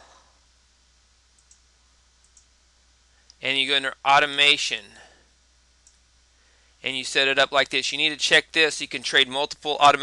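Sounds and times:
faint low hum: 0.0 - 10.0
computer mouse clicks: 1.4 - 1.6, 2.2 - 2.5.

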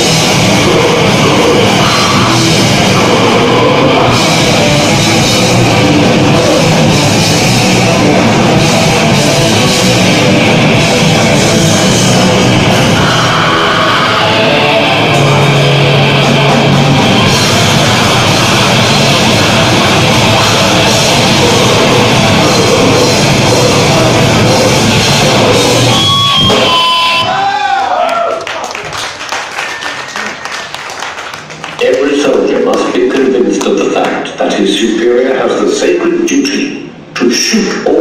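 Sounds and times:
grindcore band playing live: 0.0 - 27.4
room noise: 0.0 - 38.0.

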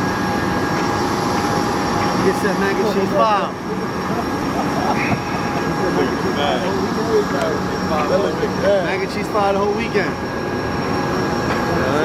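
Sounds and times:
high whining tones: 0.0 - 12.0
jet engine rushing hum: 0.0 - 12.0.

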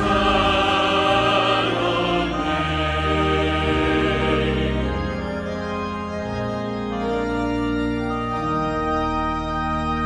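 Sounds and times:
organ playing slow chords: 0.0 - 10.0.

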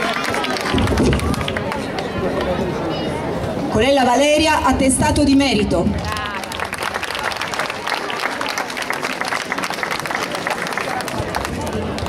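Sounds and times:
crowd talking indistinctly: 0.0 - 12.0.

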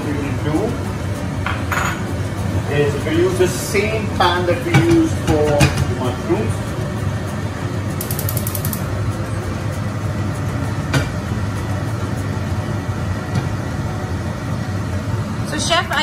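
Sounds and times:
kitchen background rumble: 0.0 - 16.0
sharp click: 8.0 - 8.8.

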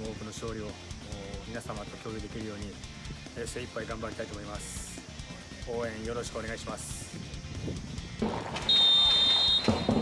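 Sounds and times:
referee's whistle blast: 8.6 - 10.0.

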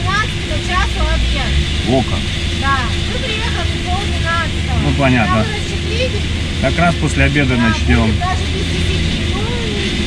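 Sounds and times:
truck diesel engine idling: 0.0 - 10.0
men talking: 1.8 - 2.4, 4.7 - 5.8, 6.6 - 8.5.

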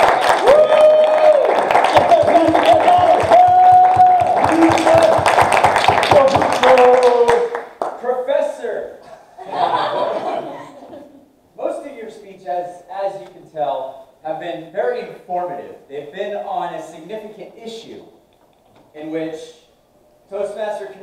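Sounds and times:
people whooping: 0.0 - 7.2
audience clapping: 0.0 - 8.1
people chuckling: 9.1 - 11.2.

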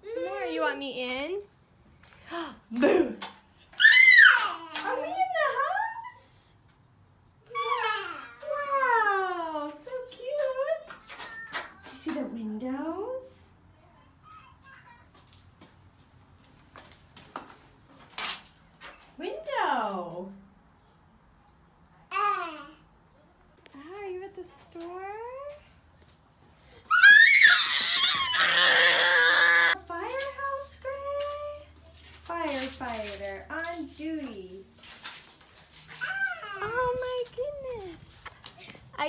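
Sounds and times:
toddler vocalizing: 26.9 - 29.8.

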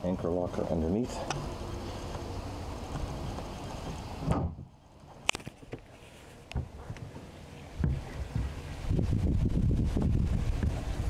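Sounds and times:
wind noise on microphone: 7.8 - 11.0.

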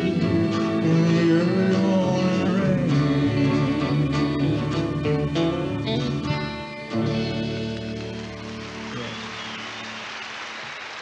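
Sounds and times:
man singing: 0.0 - 6.4
strummed guitar: 0.0 - 9.9.

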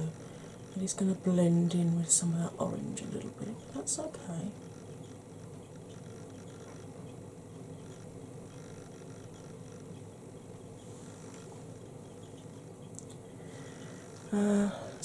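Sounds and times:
faint continuous hum: 0.0 - 15.0.

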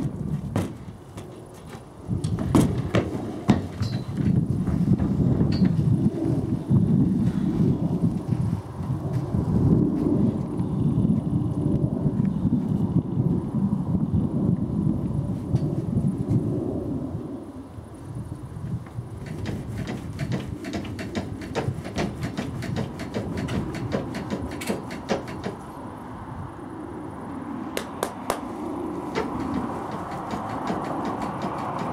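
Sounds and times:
hooves on wooden ramp: 0.0 - 6.4, 18.8 - 25.6, 28.0 - 31.9
wind buffeting microphone: 0.0 - 31.9.

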